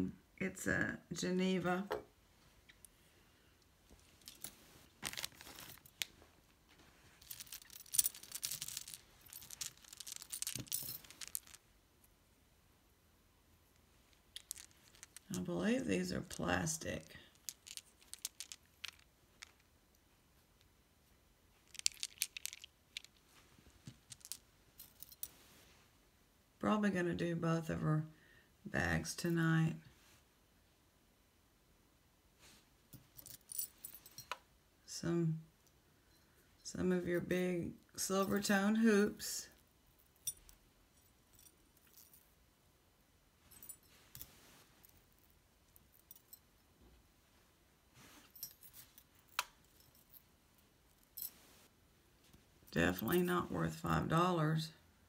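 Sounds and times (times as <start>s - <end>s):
metal jewelry clinking: 4.0s - 11.7s, 13.7s - 19.7s, 21.6s - 23.2s, 23.8s - 25.5s, 32.9s - 34.5s, 39.5s - 42.4s, 43.4s - 46.9s, 48.0s - 51.7s, 52.7s - 53.5s
plastic bag crinkling: 4.3s - 6.2s, 7.2s - 11.6s, 21.7s - 23.1s.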